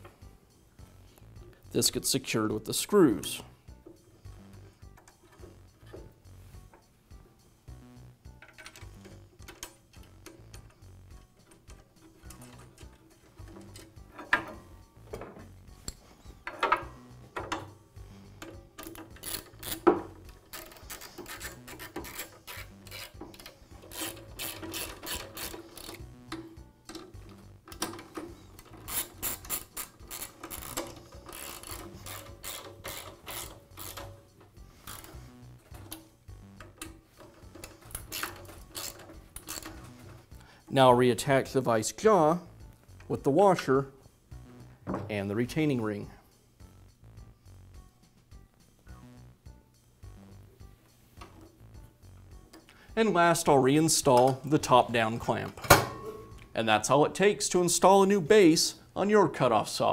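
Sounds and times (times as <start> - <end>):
knocks of tools handled: 11.4 - 17.8, 18.4 - 40.2, 44.8 - 45.2
screwdriver ratcheting clicks: 18.4 - 27.1, 27.7 - 34.2, 36.6 - 40.1.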